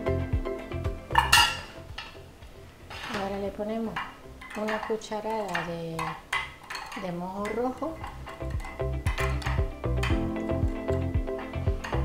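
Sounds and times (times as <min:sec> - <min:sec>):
metal tongs clinking down: 0:03.9 - 0:09.6.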